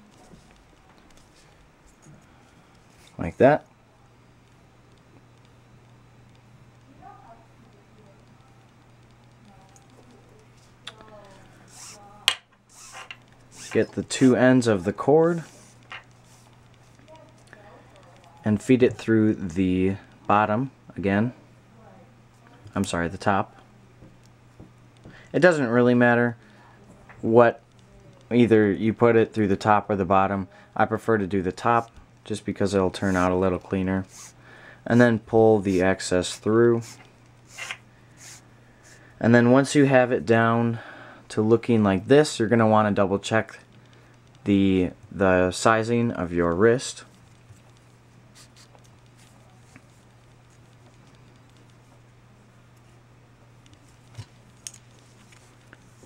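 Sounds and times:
low steady hum: 0.0s - 56.0s
cord rubbing and sliding: 11.7s - 12.1s, 12.7s - 17.0s, 34.0s - 38.4s, 53.7s - 56.0s
cord rustling: 53.6s - 56.0s.

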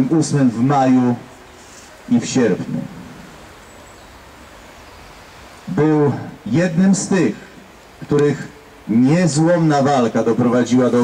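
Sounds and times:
soft outdoor hiss: 0.0s - 11.0s.

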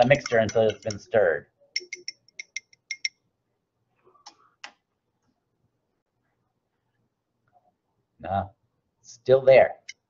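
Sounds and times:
glass beaker clinking: 0.0s - 1.1s, 1.7s - 3.2s.

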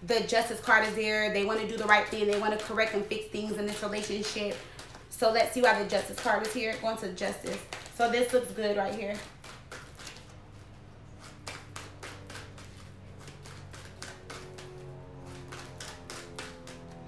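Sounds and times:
cards being shuffled: 3.7s - 17.0s
quiet background music: 10.3s - 17.0s.

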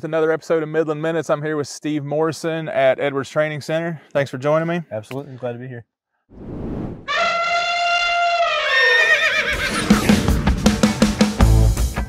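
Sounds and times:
horse whinny: 7.1s - 10.2s
rock music with drum beat: 9.7s - 12.0s.

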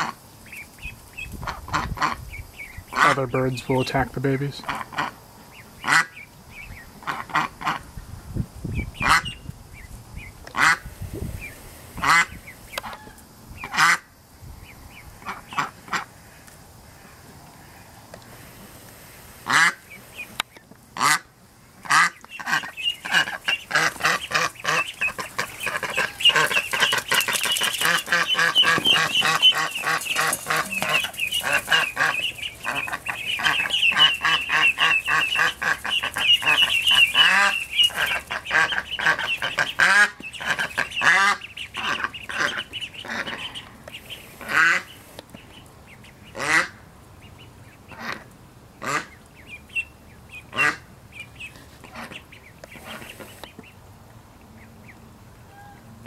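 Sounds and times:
duck calling: 0.0s - 7.9s, 9.0s - 9.4s, 10.5s - 10.9s, 12.0s - 14.1s, 19.4s - 20.3s, 21.0s - 45.0s, 46.2s - 46.8s, 47.9s - 53.4s
ducklings peeping: 0.0s - 55.9s.

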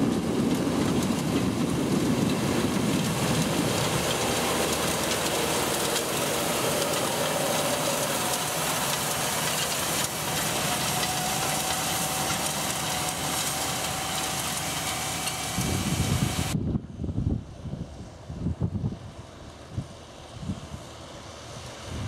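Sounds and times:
tractor diesel engine under load: 0.0s - 16.6s.

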